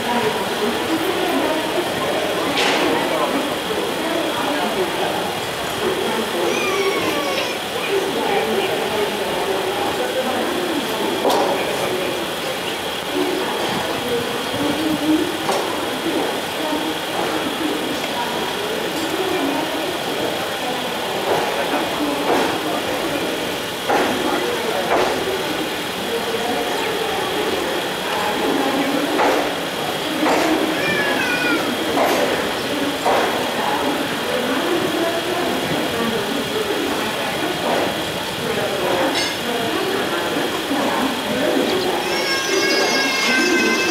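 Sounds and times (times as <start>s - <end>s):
indistinct voices: 0.0s - 43.9s
train rolling slowly: 0.0s - 43.9s
train wheels knocking on rail joints: 21.0s - 25.8s, 26.6s - 40.4s.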